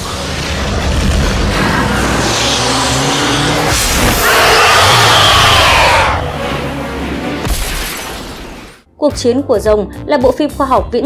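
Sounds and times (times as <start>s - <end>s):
crashes: 0.0s - 8.8s
action film music: 0.0s - 10.5s
loud high screech: 1.6s - 6.4s
tyres squealing: 4.2s - 6.2s.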